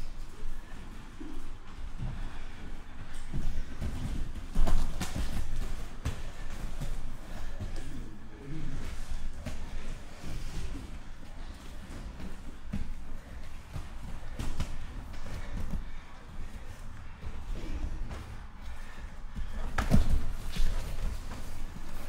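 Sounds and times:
bare feet stamping on mats: 3.1s - 8.0s, 11.5s - 22.0s.

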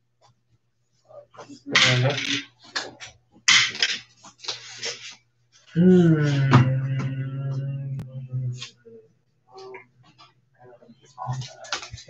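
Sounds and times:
indistinct human voices: 5.7s - 9.9s.

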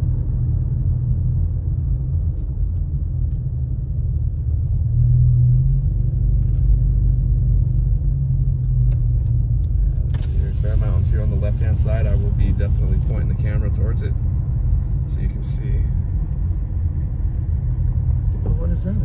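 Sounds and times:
car engine and tyres rumbling: 0.0s - 19.0s.

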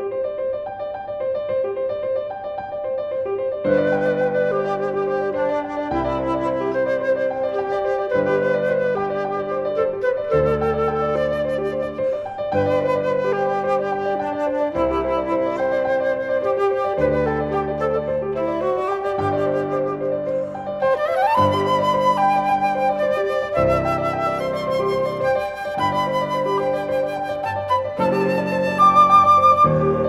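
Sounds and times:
low piano chords: 0.0s - 30.0s
flute playing: 3.6s - 30.0s.

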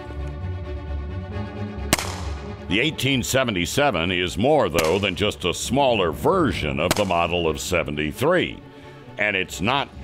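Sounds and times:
background music with bass line: 0.0s - 10.0s
revolver gunshot: 1.9s - 2.6s, 4.8s - 5.4s, 6.8s - 7.3s.

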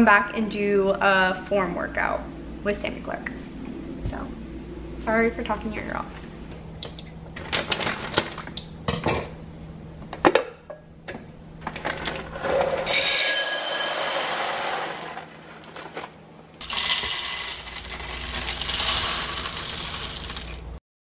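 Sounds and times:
coffee beans pouring into jar: 12.8s - 15.8s, 16.6s - 20.7s
beans pouring into plastic hopper: 13.4s - 16.0s, 16.6s - 20.7s.

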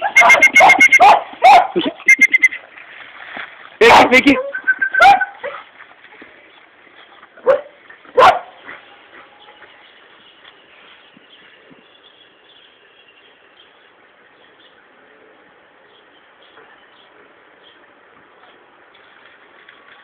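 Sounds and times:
dog barking: 0.0s - 2.0s, 5.0s - 5.6s, 7.4s - 8.6s.

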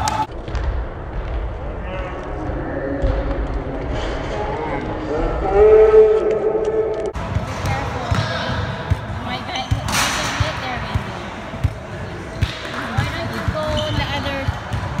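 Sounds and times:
players' voices: 7.2s - 15.0s
sneakers squeaking: 7.2s - 15.0s.

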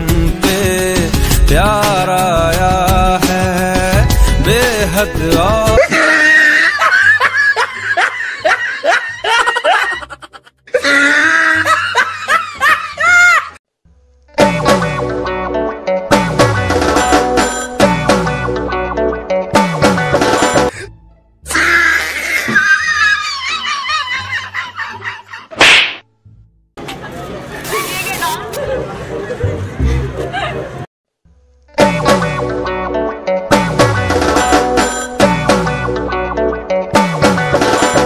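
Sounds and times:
music with high singing: 0.0s - 6.2s, 31.8s - 38.0s
loud laughter bursts: 5.8s - 13.6s, 21.5s - 25.6s.

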